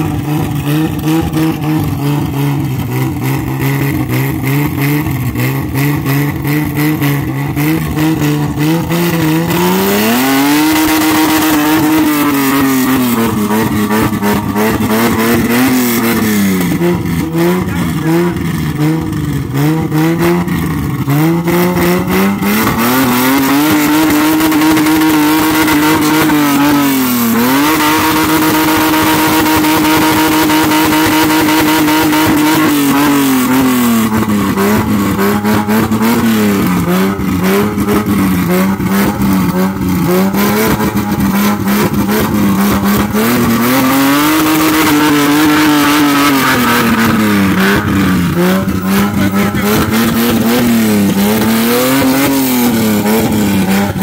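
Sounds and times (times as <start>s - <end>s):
car engine revving: 0.0s - 54.0s.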